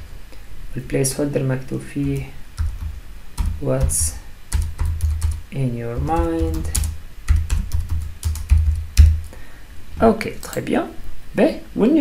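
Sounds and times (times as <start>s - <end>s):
computer keyboard typing: 2.0s - 9.4s.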